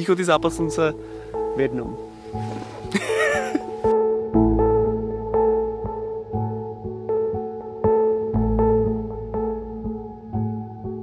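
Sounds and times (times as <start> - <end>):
ambient keyboard music: 0.0 - 11.0.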